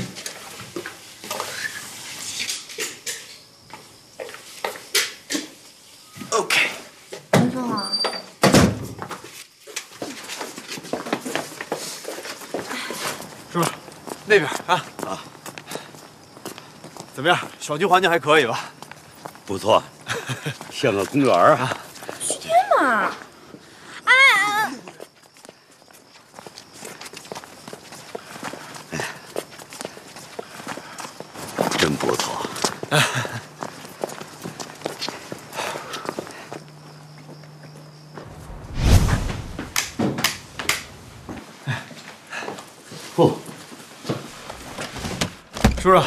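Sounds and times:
footsteps on paved path: 0:09.3 - 0:17.7, 0:24.8 - 0:38.6.

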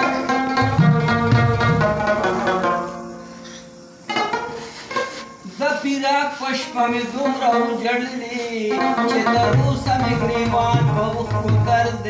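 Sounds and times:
plucked string instrument: 0:00.0 - 0:05.6, 0:06.3 - 0:12.0
man singing: 0:05.5 - 0:12.0.

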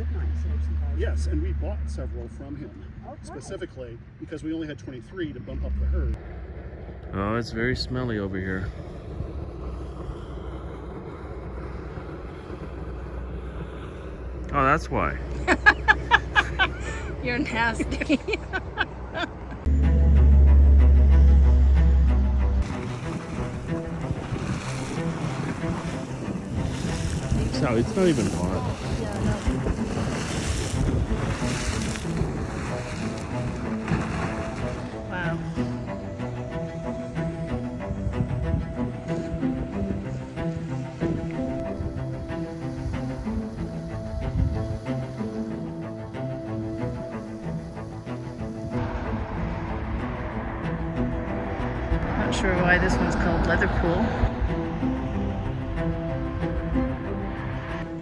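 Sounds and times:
wind buffeting microphone: 0:00.4 - 0:58.0
slow bowed-string music: 0:11.0 - 0:58.0
people's voices: 0:27.3 - 0:29.8.

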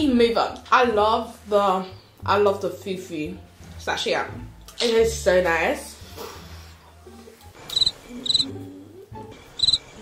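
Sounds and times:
cricket chirping: 0:07.7 - 0:08.4, 0:09.6 - 0:09.8.

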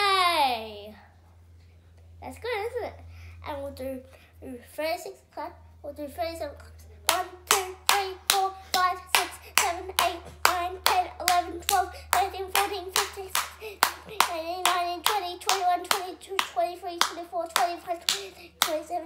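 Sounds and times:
child counting in sing-song voice: 0:02.2 - 0:19.0
child clapping hands: 0:07.1 - 0:19.0.

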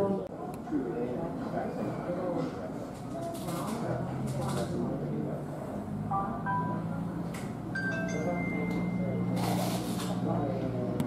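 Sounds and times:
low hum of room noise: 0:00.0 - 0:11.0
short electronic chime tones: 0:07.8 - 0:09.4.

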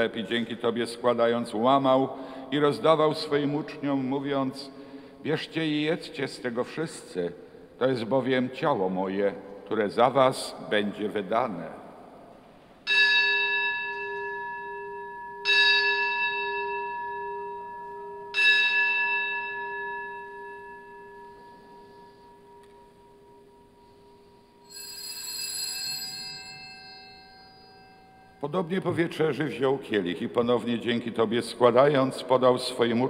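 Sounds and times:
higher-pitched bell ring: 0:12.9 - 0:28.6
bell ringing: 0:12.9 - 0:28.7.

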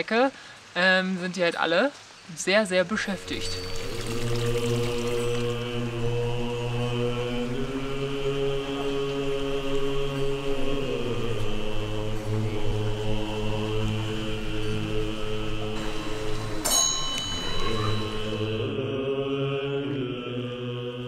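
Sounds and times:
deep droning chanted mantra: 0:03.2 - 0:21.0.

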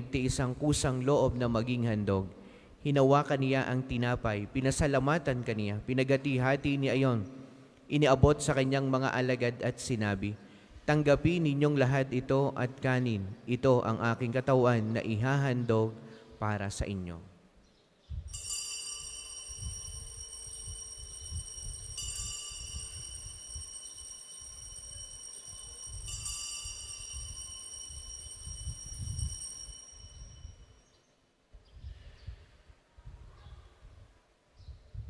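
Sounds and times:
altar bell ringing: 0:18.3 - 0:31.0.

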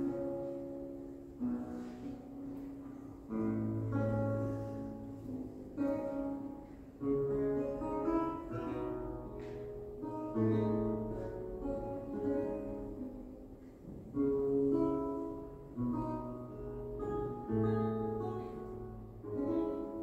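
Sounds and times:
plucked lute chords: 0:00.0 - 0:20.0.

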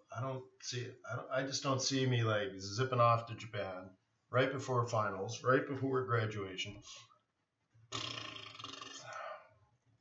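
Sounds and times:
man breathy sigh: 0:08.8 - 0:09.5.

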